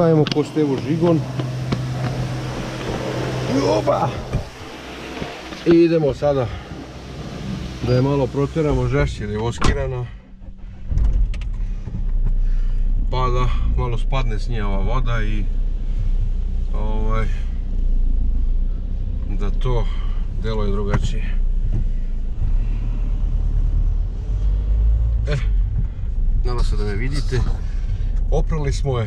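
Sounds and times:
car engine revving: 0.0 - 29.0.

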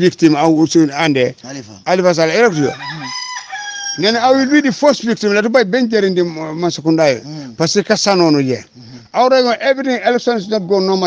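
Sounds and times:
man speaking: 0.0 - 3.2, 4.0 - 11.0
rooster crowing: 2.4 - 4.6.

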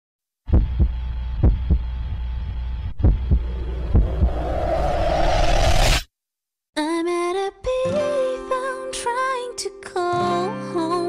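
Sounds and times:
heartbeat thumps: 0.5 - 2.2, 2.8 - 4.4
steady low hum: 2.8 - 5.3.

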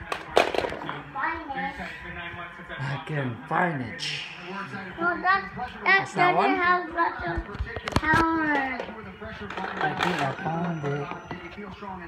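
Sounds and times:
plastic toys clattering: 0.0 - 1.0, 7.8 - 11.1
child's voice: 1.1 - 1.8, 5.0 - 8.7.

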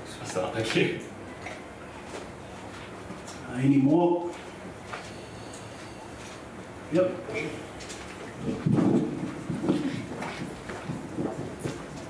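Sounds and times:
microphone handling bumps: 8.4 - 12.0.

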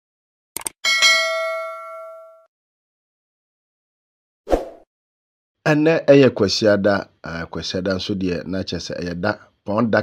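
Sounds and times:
notification bell ding: 0.9 - 2.5.

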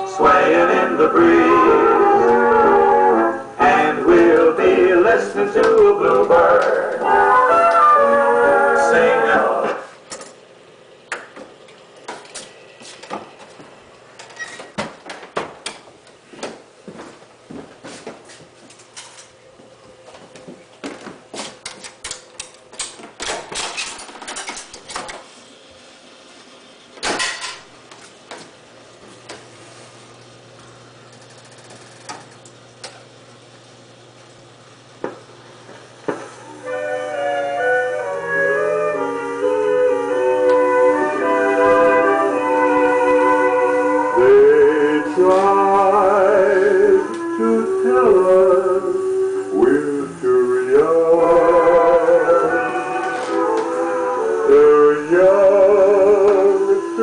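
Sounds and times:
jukebox music playing: 0.0 - 9.9, 36.4 - 57.0.

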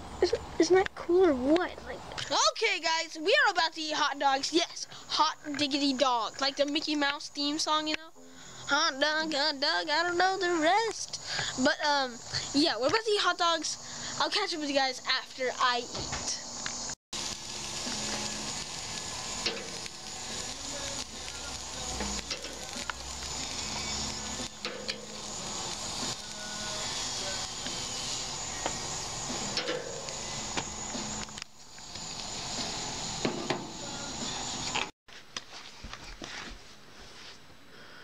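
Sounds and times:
hot dogs sizzling on grill: 3.4 - 34.9.

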